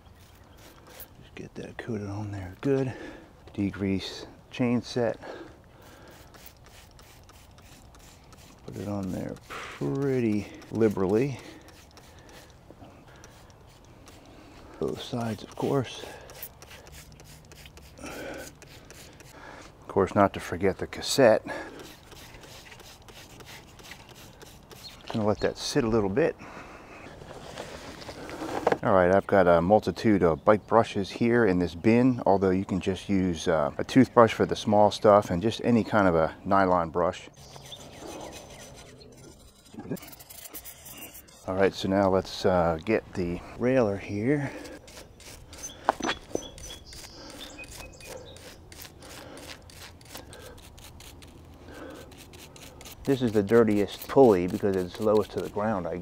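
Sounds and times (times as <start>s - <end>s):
spray bottle hissing: 5.8s - 14.3s, 16.0s - 19.4s, 21.8s - 25.2s
scrubbing and scraping grime: 5.9s - 12.5s, 13.1s - 19.4s, 21.5s - 25.4s, 37.4s - 43.4s, 44.1s - 56.0s.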